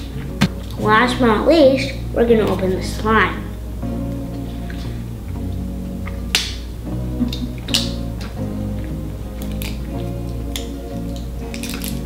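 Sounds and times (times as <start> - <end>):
background music: 0.0 - 12.0
plastic packaging crackling: 11.5 - 12.0.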